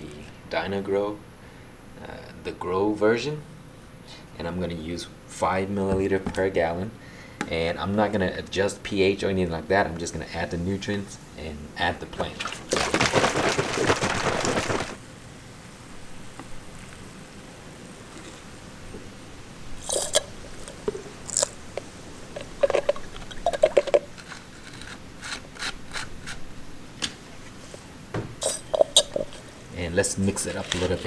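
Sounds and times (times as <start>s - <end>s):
liquid squirting: 12.2s - 15.0s, 19.8s - 26.4s, 28.4s - 29.6s.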